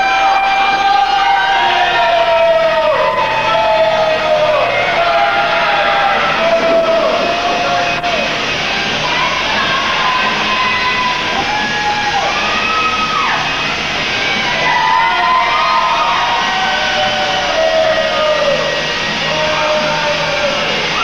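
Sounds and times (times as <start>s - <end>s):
music with sliding vocals: 0.0s - 21.0s.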